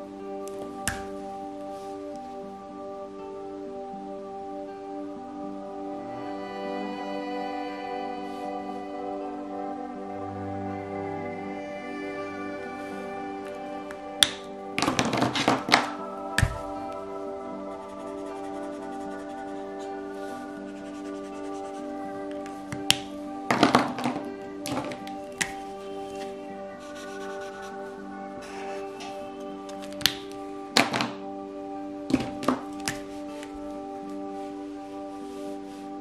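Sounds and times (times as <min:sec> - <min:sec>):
soft background music: 0:00.0 - 0:36.0
markers clattering taps: 0:14.2 - 0:17.0, 0:22.2 - 0:26.4, 0:29.0 - 0:31.2, 0:32.1 - 0:33.5.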